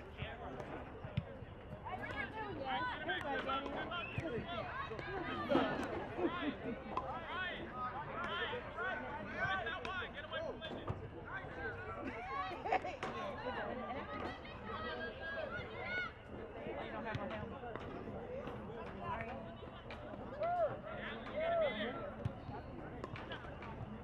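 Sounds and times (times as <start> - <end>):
crowd chatter: 0.0 - 24.0.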